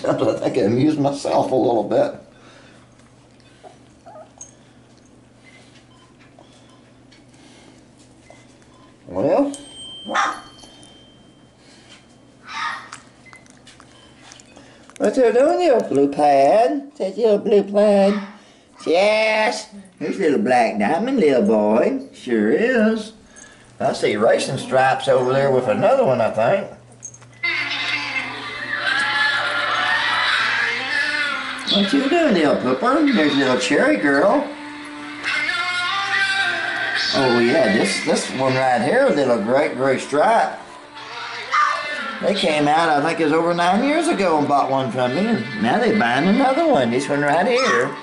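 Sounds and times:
puppies whimpering: 3.6 - 4.8, 27.4 - 32.1, 47.3 - 48.0.

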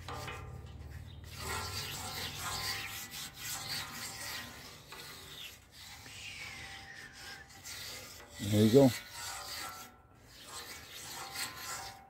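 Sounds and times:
metal spatula scraping griddle: 0.0 - 12.0.

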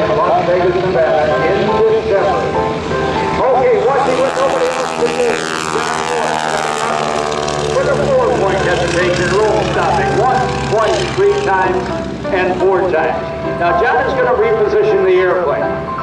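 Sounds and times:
radial engine and propeller running: 0.0 - 16.0
voice over public address: 7.8 - 15.7.

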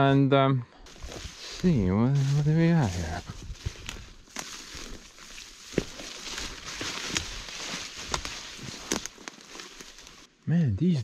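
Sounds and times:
footsteps: 0.8 - 10.3
undergrowth and branches rustling: 0.8 - 10.5
twigs snapping: 3.6 - 10.3.

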